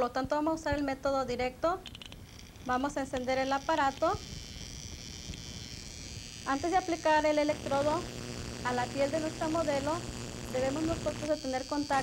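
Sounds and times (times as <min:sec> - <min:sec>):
high-pitched electrical buzz: 0:00.0 - 0:12.0.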